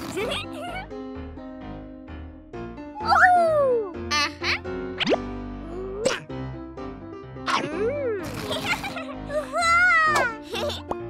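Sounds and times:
light cartoon background music: 0.0 - 11.0.

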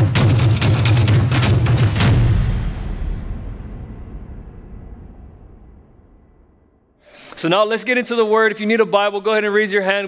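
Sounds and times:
deep boom low rumble: 2.0 - 7.0.

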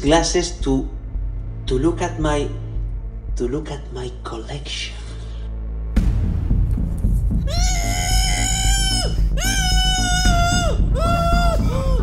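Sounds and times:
low music bed: 0.0 - 12.0.

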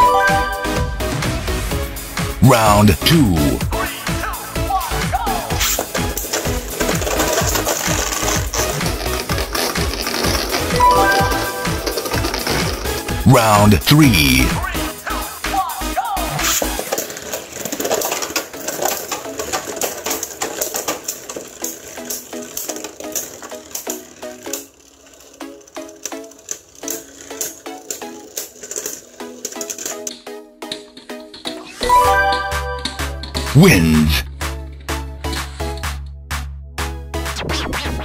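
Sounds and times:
background music: 0.0 - 38.0
rapid clicks and rattles: 5.6 - 10.8, 11.8 - 13.2, 16.4 - 31.7
spinning tops clashing: 5.8 - 13.0, 31.4 - 33.5.

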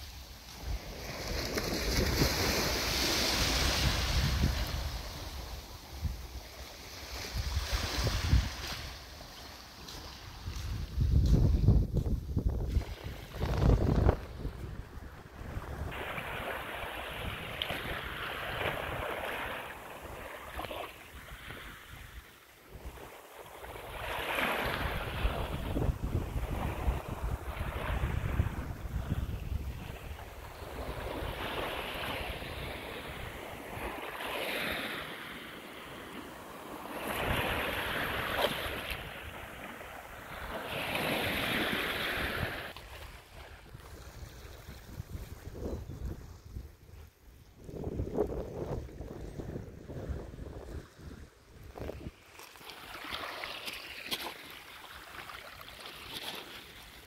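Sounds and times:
wind buffeting microphone: 10.3 - 19.2, 24.0 - 34.0, 43.5 - 52.2.

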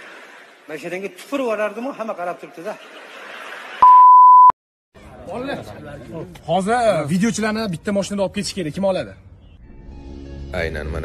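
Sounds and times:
high electronic beep: 3.8 - 4.6.

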